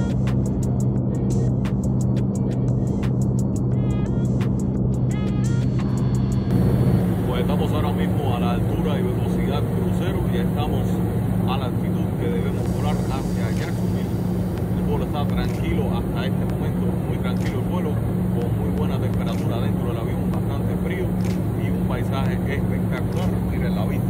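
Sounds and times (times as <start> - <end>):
airliner cabin drone: 0.0 - 24.0
man talking: 7.0 - 24.0.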